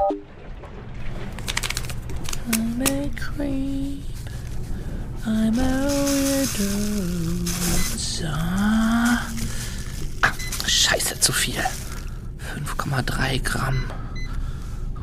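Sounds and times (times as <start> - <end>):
hissy rustle: 1.5 - 12.2
person humming: 5.2 - 10.4.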